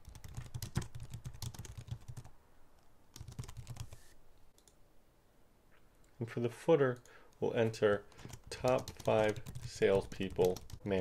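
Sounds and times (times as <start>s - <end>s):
typing on computer keyboard: 0.0s - 2.3s, 3.1s - 4.0s, 8.1s - 10.9s.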